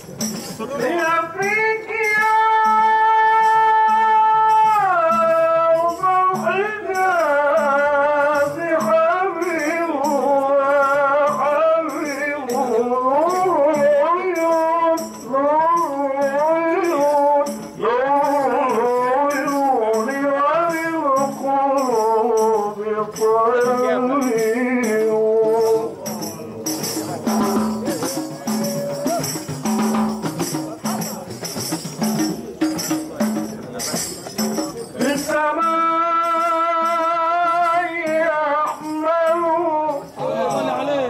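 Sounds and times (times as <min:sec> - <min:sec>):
lower accompanying line: 0:00.0 - 0:41.0
shaken percussion beat: 0:00.0 - 0:41.0
man singing devotional melody: 0:00.2 - 0:41.0.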